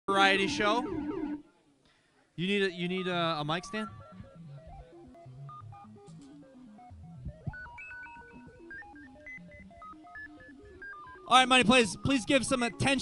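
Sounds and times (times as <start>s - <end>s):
electric guitar picked notes: 0.1s - 1.6s, 3.1s - 13.0s.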